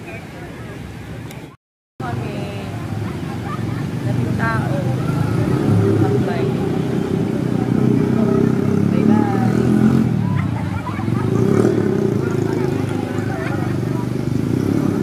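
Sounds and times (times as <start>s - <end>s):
faint voices: 0.0s - 15.0s
motorcycle engine and road rumble: 0.0s - 15.0s.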